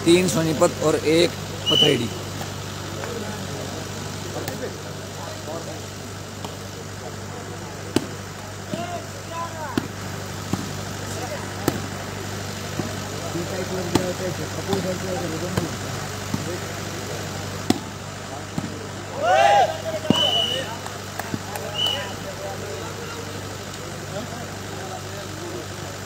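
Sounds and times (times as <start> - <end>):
low engine-like hum: 0.0 - 26.0
hands slapping volleyball: 9.7 - 10.7, 11.6 - 11.9, 13.9 - 15.7, 16.3 - 16.6, 17.6 - 17.9, 20.0 - 22.0.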